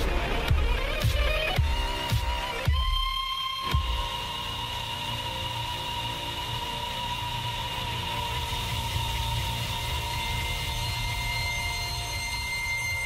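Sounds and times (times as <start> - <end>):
high held tones: 0.0 - 13.0.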